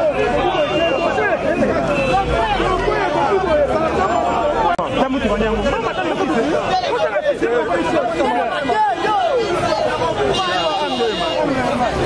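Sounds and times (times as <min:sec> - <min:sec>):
group of people chattering: 0:00.0 - 0:12.0.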